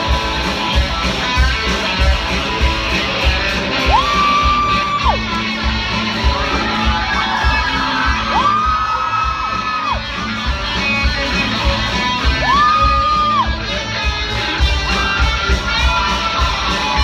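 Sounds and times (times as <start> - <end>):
drums: 0.0 - 17.0
electric guitars: 0.0 - 17.0.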